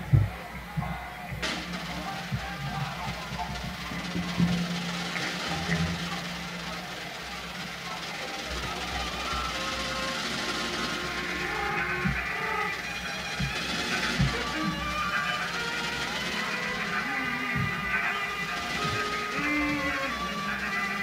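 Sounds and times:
sharp percussive hit: 1.4 - 7.1
pop band playing: 1.4 - 21.0.

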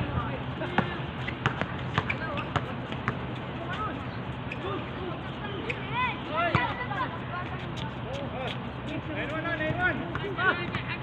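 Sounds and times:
players' voices: 0.0 - 11.0
basketball bouncing on hard court: 0.6 - 3.2, 6.4 - 6.8.

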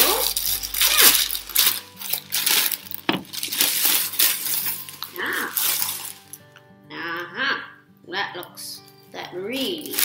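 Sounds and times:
dry flakes rattling: 0.0 - 6.4
plastic bag crinkling: 0.0 - 6.4, 9.6 - 10.0.

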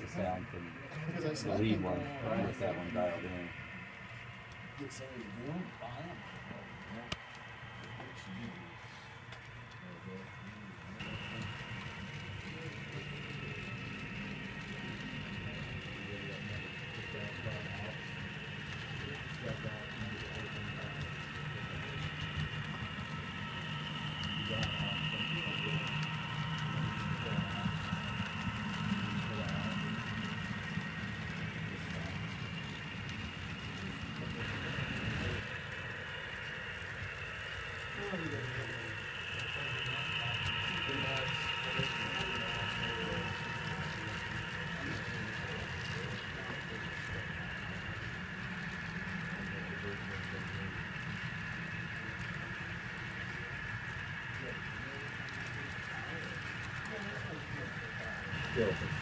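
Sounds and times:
faint voices murmuring: 0.0 - 59.0
high whine: 0.0 - 59.0
model train rumble: 0.0 - 59.0.

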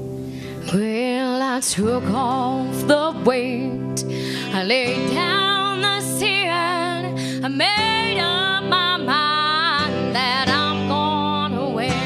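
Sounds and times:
guitars and bass playing: 0.0 - 1.0, 1.7 - 12.0.

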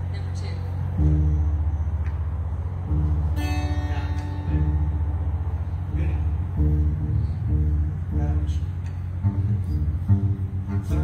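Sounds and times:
upright bass plucked notes: 0.7 - 11.0
acoustic guitar strum: 2.8 - 11.0.

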